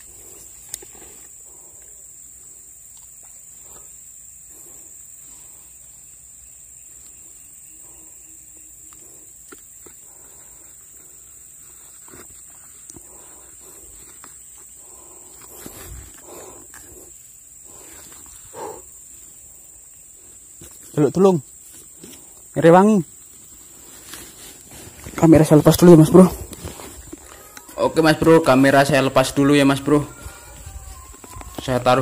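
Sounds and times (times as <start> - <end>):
high-pitched insect drone: 0.0 - 23.8, 24.5 - 32.0
faint rustles: 8.8 - 22.5, 23.1 - 28.4.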